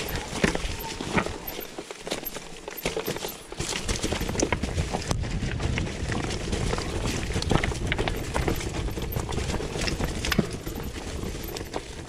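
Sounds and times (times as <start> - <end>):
bike rattling over rocks: 0.0 - 12.0
tyres crunching on loose stones: 0.0 - 12.0.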